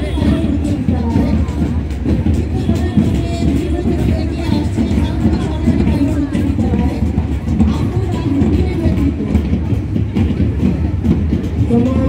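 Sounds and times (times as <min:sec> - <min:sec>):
indistinct outdoor crowd: 0:00.0 - 0:12.0.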